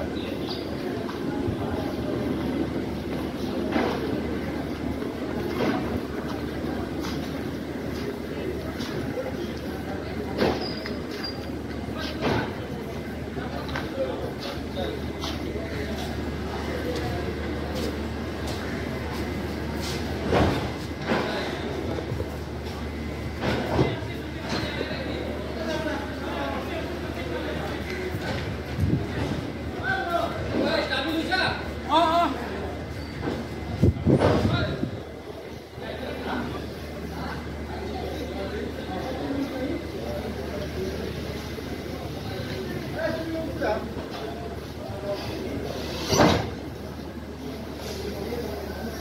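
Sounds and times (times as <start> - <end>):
people's voices: 0.0 - 49.0
train wheels rumbling on track: 0.0 - 49.0.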